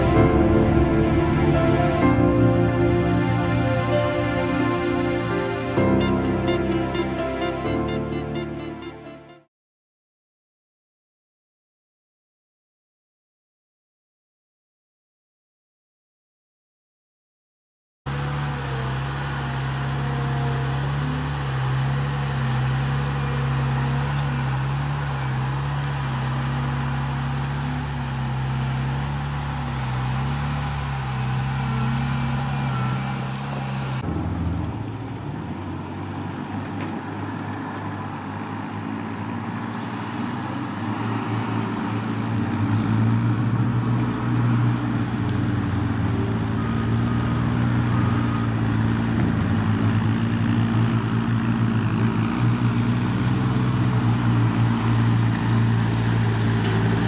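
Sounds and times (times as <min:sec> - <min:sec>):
vehicle engine driving through water: 0:00.0 - 0:07.6, 0:18.1 - 0:57.0
steady engine drone: 0:00.0 - 0:09.4, 0:18.1 - 0:57.0.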